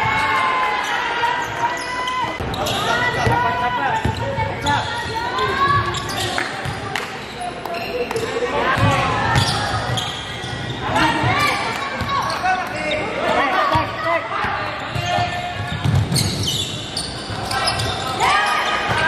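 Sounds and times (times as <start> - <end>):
sneakers squeaking: 0.0 - 19.0
basketball bouncing on court: 8.7 - 10.2, 14.9 - 16.5.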